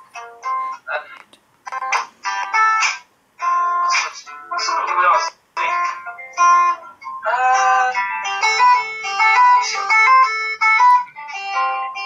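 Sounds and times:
acoustic guitar playing: 0.0s - 0.8s, 1.7s - 12.0s
person singing: 7.2s - 8.8s.

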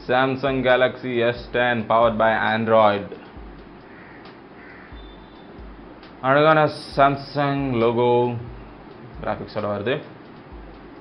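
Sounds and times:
quiet room noise: 0.0s - 11.0s
faint bird calls: 3.8s - 5.6s.

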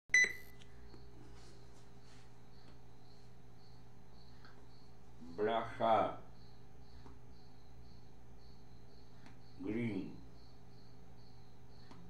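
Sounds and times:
short electronic beep: 0.1s - 0.6s.

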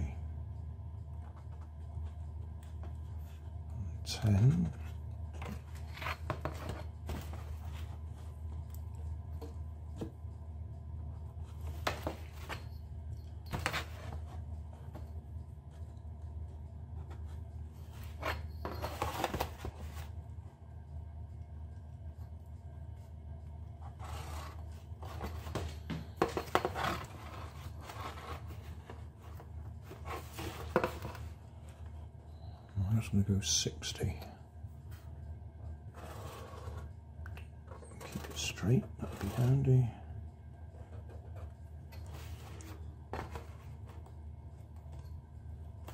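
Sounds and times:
steady low hum: 0.0s - 45.9s.

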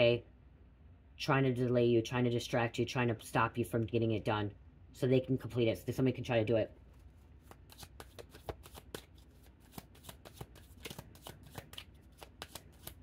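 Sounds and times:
cards being shuffled: 6.8s - 13.0s.

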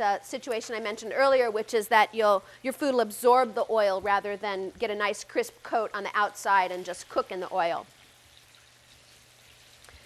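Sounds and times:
tomato slices frying in oil: 0.0s - 10.0s.

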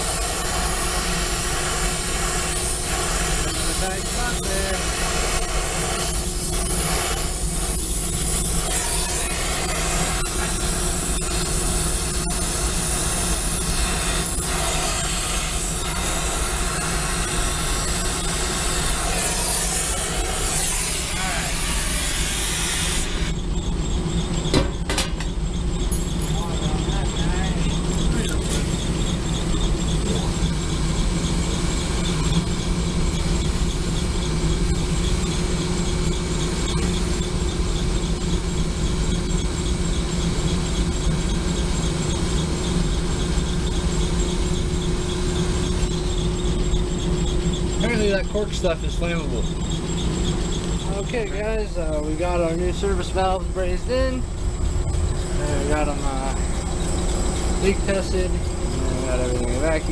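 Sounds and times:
low mechanical hum: 0.0s - 59.9s
torch flame hissing: 0.0s - 59.9s.

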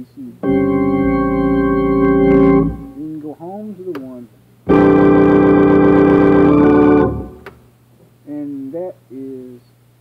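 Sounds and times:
organ holding a chord: 0.4s - 3.2s, 4.7s - 7.5s.

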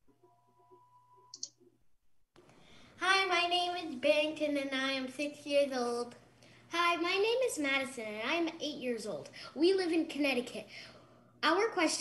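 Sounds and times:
faint electrical hum: 2.4s - 12.0s
faint room hiss: 2.4s - 12.0s.

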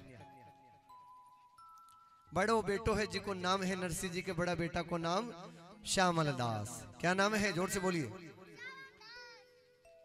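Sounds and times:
voice echo: 0.0s - 0.8s, 2.3s - 9.6s.

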